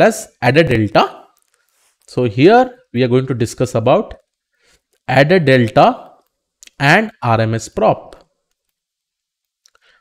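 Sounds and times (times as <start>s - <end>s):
man speaking: 0.0s - 1.4s, 2.1s - 4.2s, 5.1s - 8.2s.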